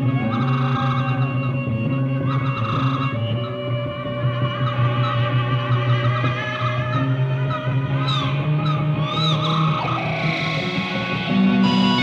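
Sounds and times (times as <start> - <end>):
space-rock synthesizer music: 0.0 - 12.0.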